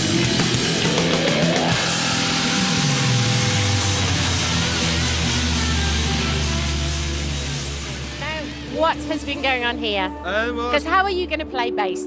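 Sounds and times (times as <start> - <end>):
deep sliding bass drone: 0.0 - 11.0
distorted guitar chords: 0.0 - 11.3.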